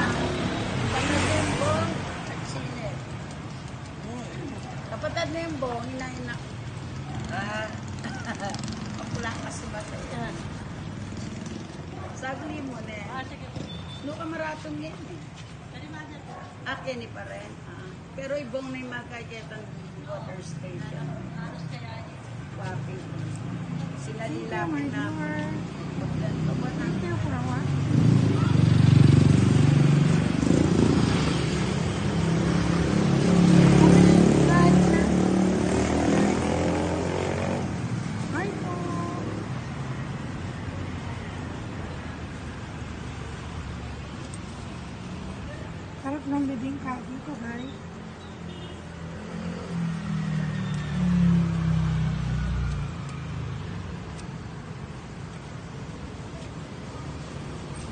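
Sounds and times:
vehicle engine passing by: 0:00.0 - 0:13.8, 0:22.4 - 0:48.2, 0:48.9 - 0:54.4.

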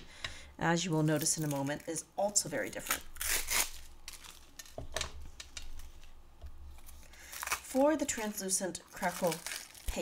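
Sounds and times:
plastic wrap crinkling: 0:00.8 - 0:06.2, 0:06.8 - 0:10.0.

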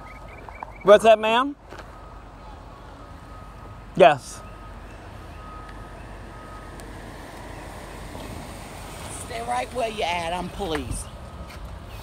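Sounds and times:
car engine rumbling and idling: 0:00.0 - 0:12.0.

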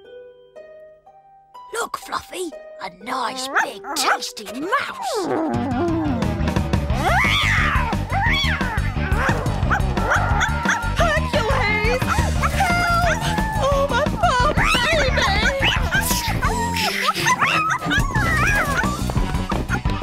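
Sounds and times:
cartoon background music: 0:00.0 - 0:20.0
cartoon dog yelping and whining: 0:03.3 - 0:06.2, 0:07.1 - 0:19.0.

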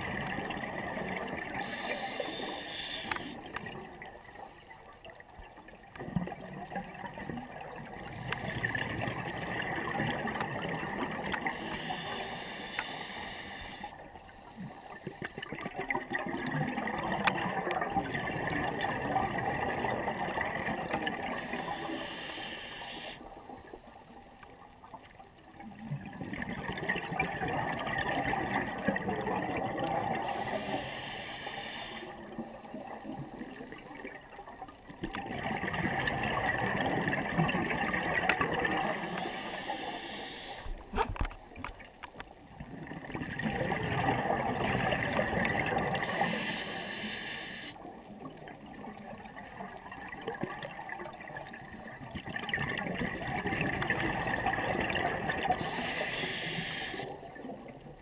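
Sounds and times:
scuba regulator bubbles gurgling: 0:00.0 - 0:58.0.

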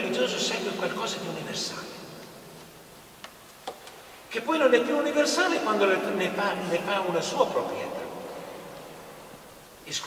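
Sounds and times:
man's voice echoing in church: 0:00.0 - 0:02.7, 0:04.3 - 0:10.0.

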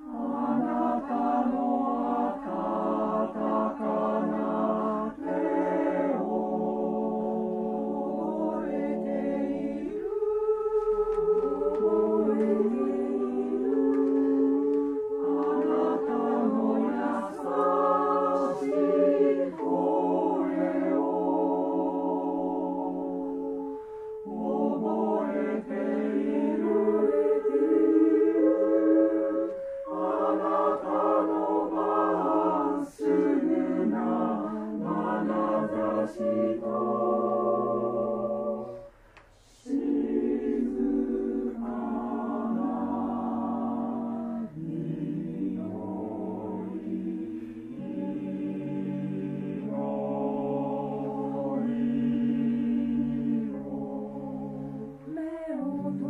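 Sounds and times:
choir singing held chords: 0:00.0 - 0:56.0.

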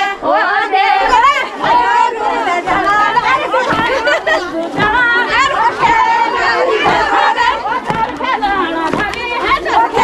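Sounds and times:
women chattering and calling: 0:00.0 - 0:10.0.

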